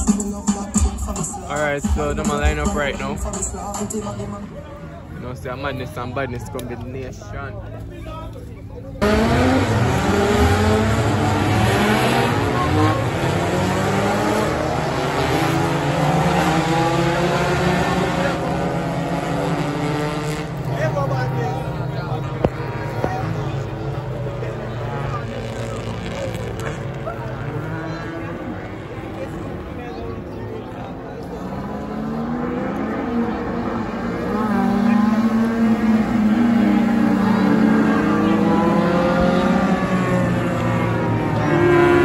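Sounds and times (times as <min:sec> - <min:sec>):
race car engines accelerating: 0:00.0 - 0:42.0.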